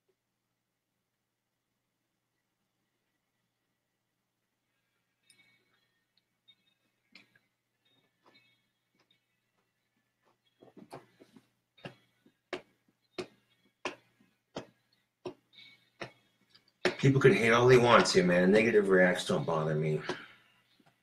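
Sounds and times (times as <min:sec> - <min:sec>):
faint steady ticking: 0:02.4 - 0:21.0.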